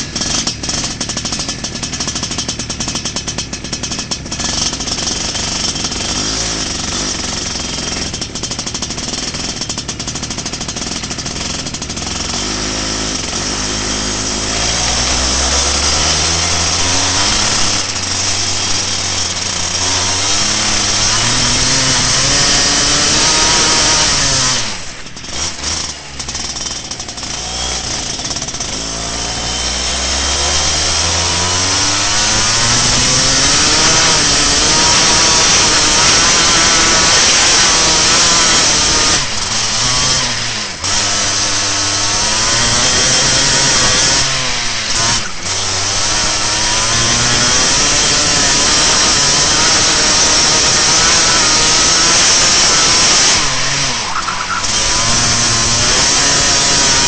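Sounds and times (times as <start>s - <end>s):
kart engine revving: 0.0s - 57.0s.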